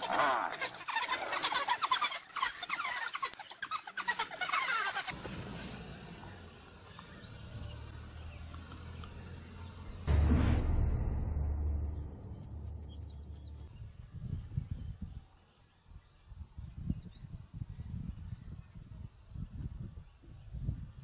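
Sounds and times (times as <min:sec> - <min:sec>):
animal squeals and chirping calls: 0:00.0 - 0:05.2.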